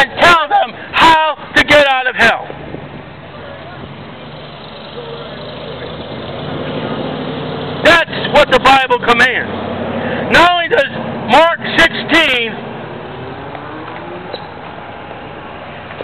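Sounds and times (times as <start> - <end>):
vehicle engine humming: 0.0 - 16.0.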